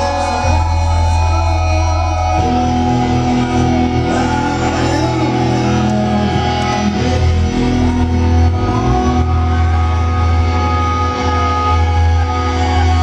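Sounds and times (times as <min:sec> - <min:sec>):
muffled live rock band: 0:00.0 - 0:13.0.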